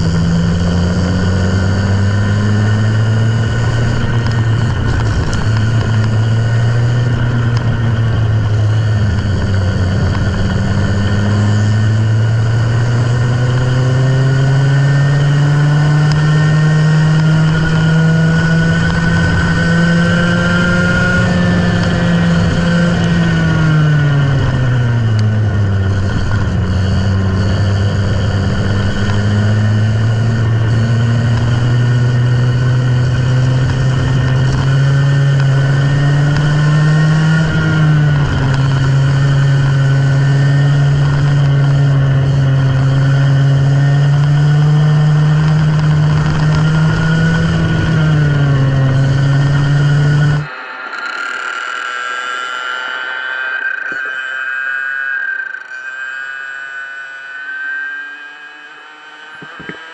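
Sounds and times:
go-kart engine running hard: 0.0s - 54.2s, 58.2s - 59.9s
high-pitched engine whine: 0.0s - 59.9s.

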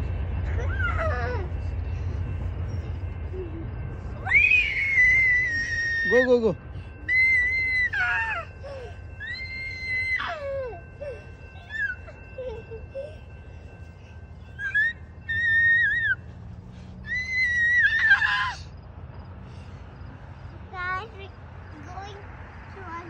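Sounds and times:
child squealing: 4.2s - 6.2s, 7.1s - 12.8s, 14.6s - 16.2s, 17.1s - 18.7s.

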